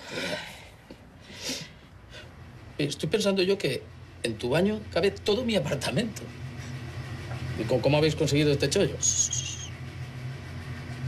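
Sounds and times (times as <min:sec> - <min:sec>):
washing machine spinning: 0:02.6 - 0:11.0.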